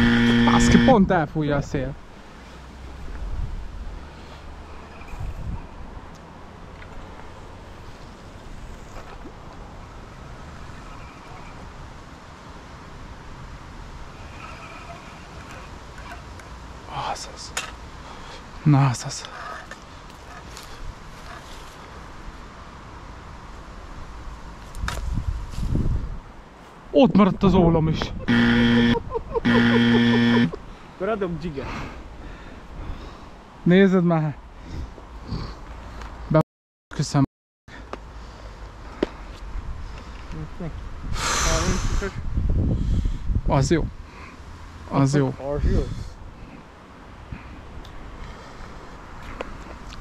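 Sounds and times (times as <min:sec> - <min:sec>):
low buzzer tone: 0:00.0 - 0:01.0, 0:28.2 - 0:30.6
wind buffeting microphone: 0:05.0 - 0:06.0, 0:24.7 - 0:26.4, 0:40.9 - 0:44.0.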